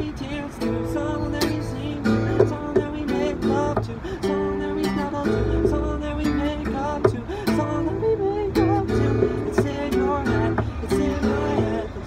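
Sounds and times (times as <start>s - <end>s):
acoustic guitar strumming: 0.0s - 12.0s
man singing: 0.0s - 12.0s.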